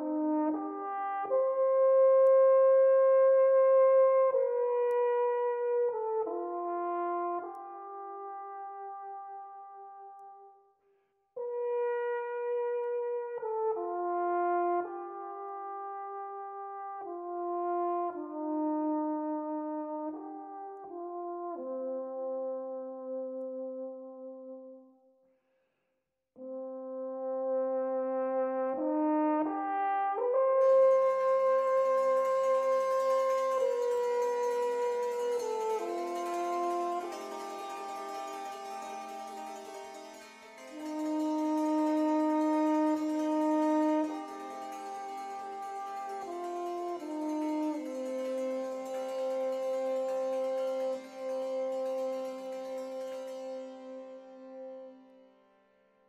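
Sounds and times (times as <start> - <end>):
alphorn slow melody: 28.3 - 55.6.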